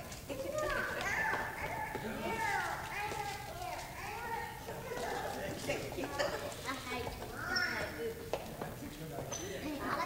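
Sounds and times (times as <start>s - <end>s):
children's voices chattering: 0.0s - 8.3s, 9.5s - 10.0s.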